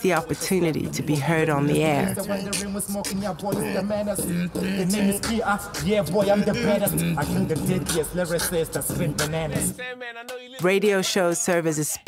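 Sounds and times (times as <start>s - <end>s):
man rapping: 0.0s - 12.0s.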